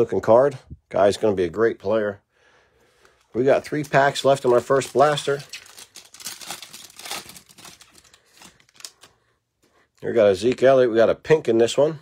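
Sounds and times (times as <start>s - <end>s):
foil wrapper crinkling: 3.4s - 9.1s.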